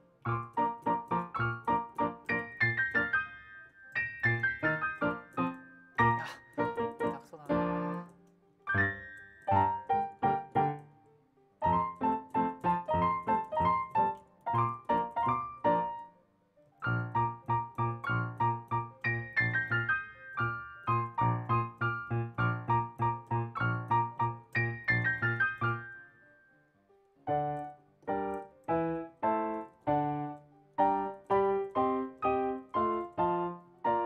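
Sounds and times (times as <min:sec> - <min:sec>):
solo classical piano: 0:00.0 - 0:34.0.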